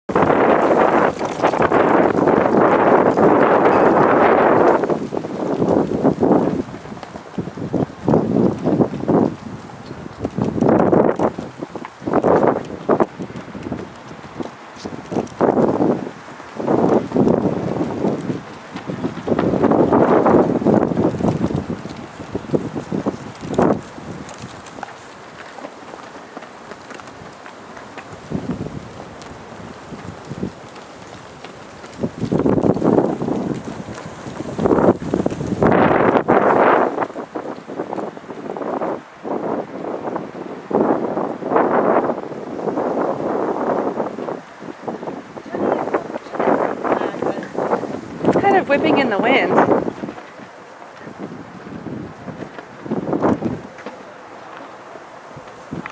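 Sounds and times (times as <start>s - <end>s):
wind buffeting microphone: 0.1s - 55.9s.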